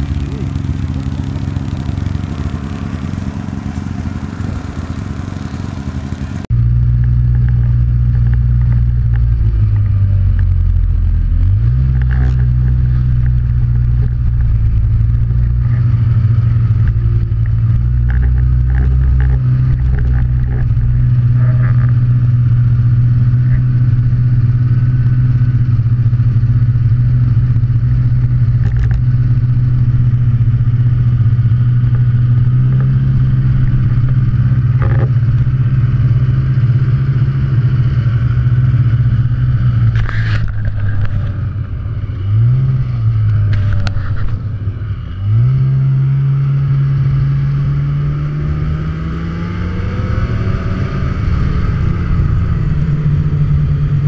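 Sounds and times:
snowmobile engine running: 0:00.0 - 0:54.0.

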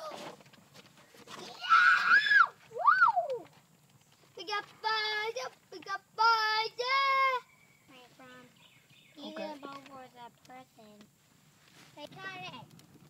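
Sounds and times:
child squealing: 0:01.4 - 0:03.4
child whooping: 0:01.4 - 0:03.5.

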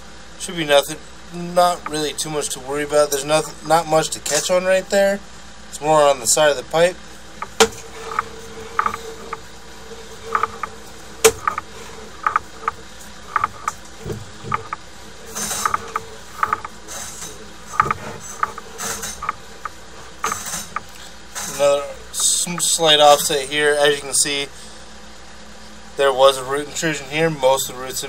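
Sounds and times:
irregular mechanical clicks: 0:07.4 - 0:22.7
cable winding onto reel: 0:07.4 - 0:23.3.

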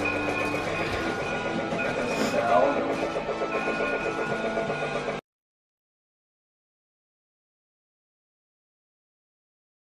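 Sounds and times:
music: 0:00.0 - 0:05.2
toy train on plastic track: 0:00.0 - 0:05.2.

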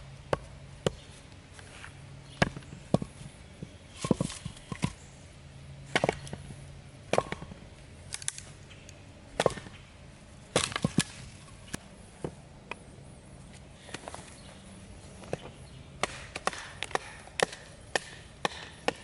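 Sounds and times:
sharp wooden knocks: 0:15.3 - 0:19.0.

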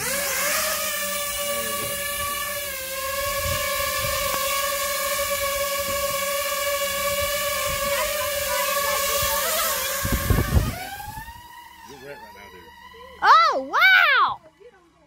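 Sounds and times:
drone propellers buzzing whine: 0:00.0 - 0:15.0
propeller downwash buffeting microphone: 0:00.0 - 0:15.0.

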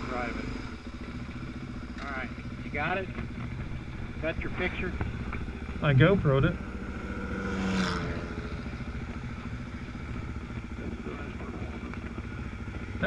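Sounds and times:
motorcycle engines idling: 0:00.0 - 0:13.0.

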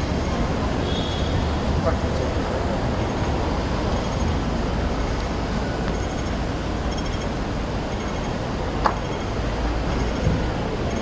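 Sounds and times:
city traffic rumble: 0:00.0 - 0:11.0
faint high-pitched beeps: 0:05.8 - 0:07.3, 0:07.9 - 0:08.4.

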